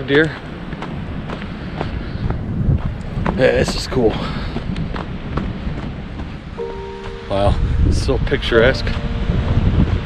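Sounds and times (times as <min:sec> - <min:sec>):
wind buffeting microphone: 0:00.0 - 0:06.6, 0:07.3 - 0:10.0
background music chord: 0:06.6 - 0:10.0.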